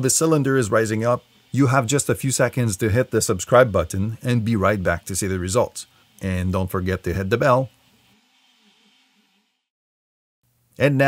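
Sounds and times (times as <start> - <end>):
faint stepper motor whine: 0.0 - 9.7.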